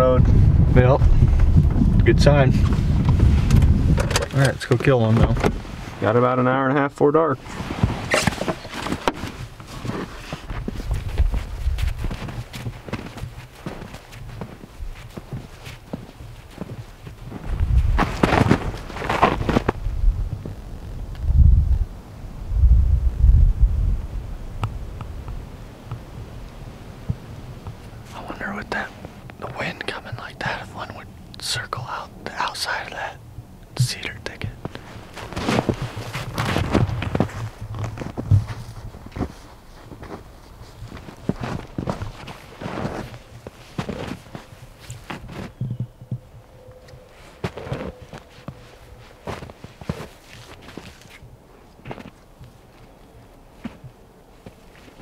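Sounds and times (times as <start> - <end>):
low microphone rumble: 0.0 - 31.3, 33.0 - 46.5
footsteps crunching through snow: 7.4 - 21.0, 34.6 - 45.7, 47.2 - 55.0.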